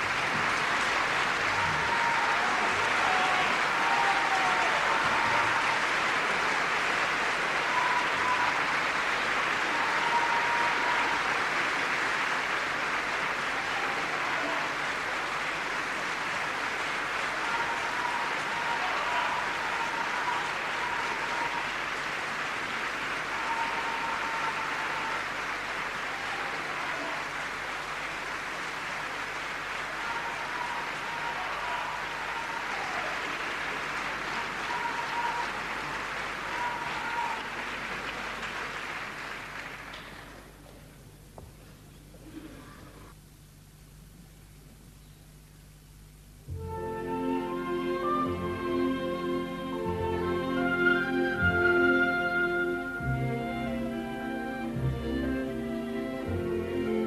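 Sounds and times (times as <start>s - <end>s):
audience applauding: 0.0s - 43.2s.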